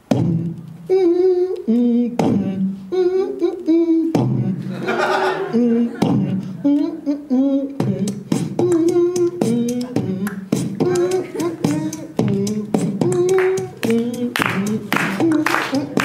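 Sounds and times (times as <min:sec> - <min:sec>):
beatbox drum hits and clicks: 0:00.0 - 0:04.6, 0:06.0 - 0:06.9, 0:07.7 - 0:16.0
wordless sung melody: 0:00.0 - 0:16.0.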